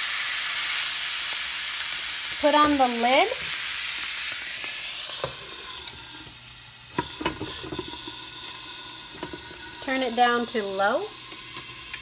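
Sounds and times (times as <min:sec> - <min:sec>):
chicken sizzling in a pan: 0:00.0 - 0:12.0.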